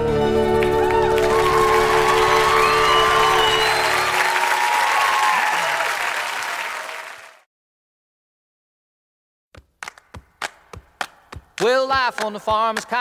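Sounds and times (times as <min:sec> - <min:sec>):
live song held notes: 0:00.0 - 0:04.7
audience applauding: 0:00.4 - 0:07.5.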